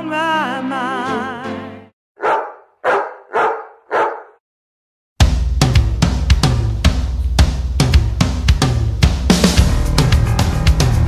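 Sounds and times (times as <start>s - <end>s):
dog barking: 2.2s - 4.4s.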